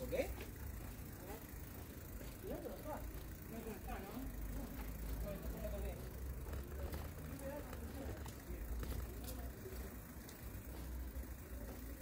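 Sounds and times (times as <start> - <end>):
distant indistinct voices: 0.0 - 12.0
low traffic rumble: 0.0 - 12.0.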